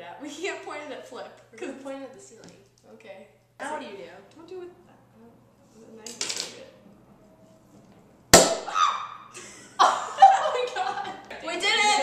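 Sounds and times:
champagne cork popping: 8.3 - 9.2
women shrieking and laughing: 8.7 - 11.1.

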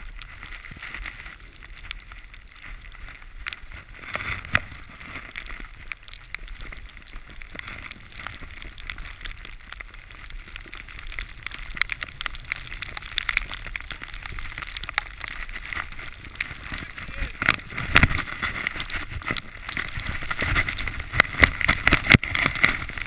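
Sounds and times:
skis sliding over snow: 0.0 - 23.0
ski edges scraping: 0.2 - 23.0.

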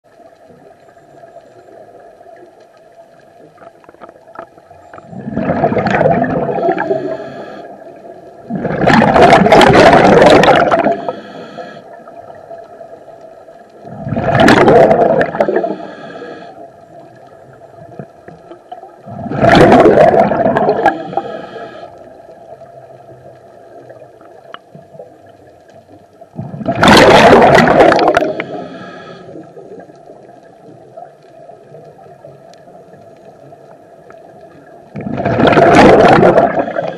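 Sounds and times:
faint steady hum: 0.1 - 9.2, 10.6 - 36.9
bubbly exhaled air underwater: 3.4 - 12.9, 13.8 - 36.9.

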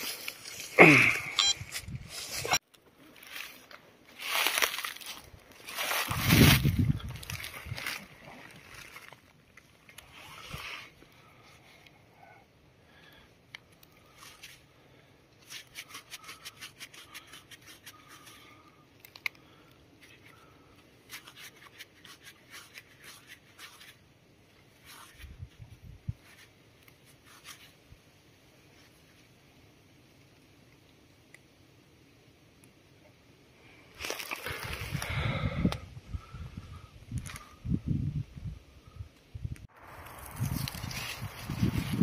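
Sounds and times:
hand scraping soil and leaves: 0.0 - 12.0, 13.0 - 31.5, 33.9 - 35.4, 39.6 - 42.0.

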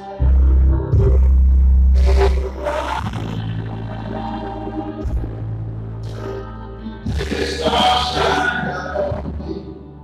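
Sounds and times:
distorted deep bass note: 0.0 - 10.0.

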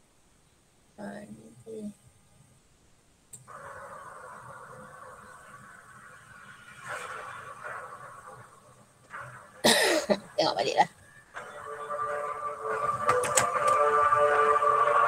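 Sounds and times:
faint steady background sound: 0.0 - 15.0
person coughing: 9.6 - 10.3.

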